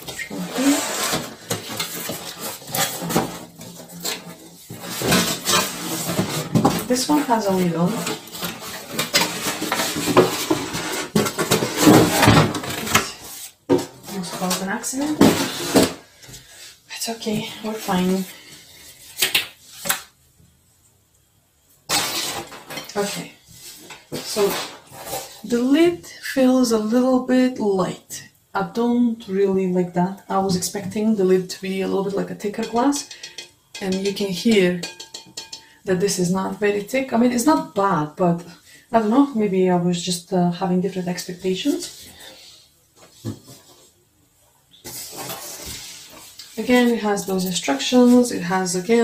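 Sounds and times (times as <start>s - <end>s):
cardboard and paper rustling: 0.0s - 16.0s.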